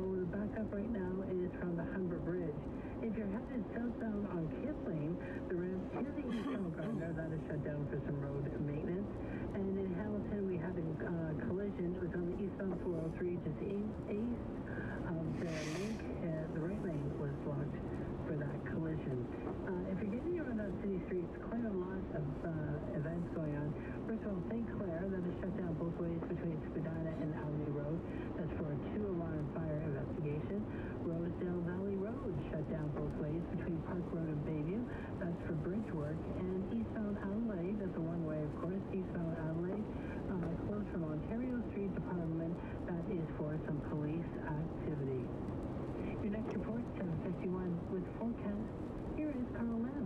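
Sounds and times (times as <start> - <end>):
person talking on car radio: 3.2 - 9.0, 9.8 - 25.0.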